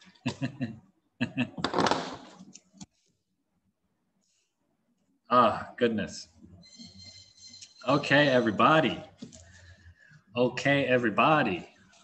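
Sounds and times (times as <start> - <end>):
person's voice over a call: 7.9 - 9.2, 10.4 - 11.8.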